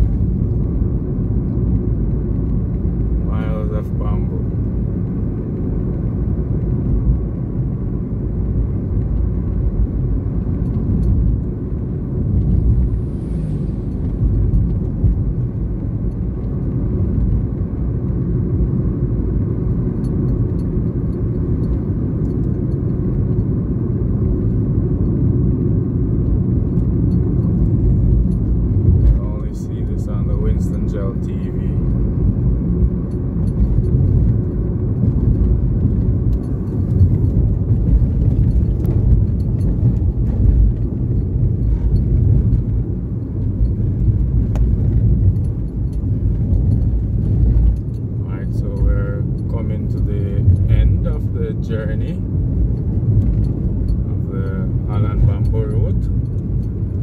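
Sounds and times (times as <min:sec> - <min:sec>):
car engine and tyres rumbling: 0:00.0 - 0:57.0.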